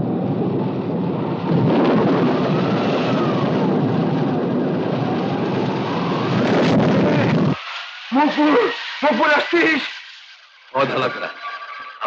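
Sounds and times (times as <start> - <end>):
loud rumble of wind: 0.0 - 9.4
faint wavering wind howl: 0.0 - 11.0.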